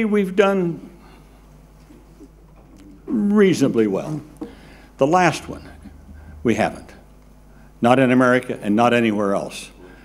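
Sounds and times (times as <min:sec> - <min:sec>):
low hum: 0:04.2 - 0:08.4
faint low-pitched sound: 0:05.3 - 0:07.7.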